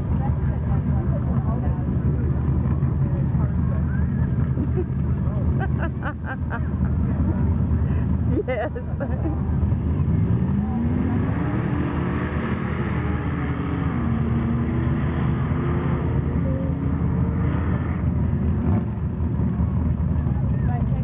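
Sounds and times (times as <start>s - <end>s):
engines racing at high revs: 0.0s - 21.0s.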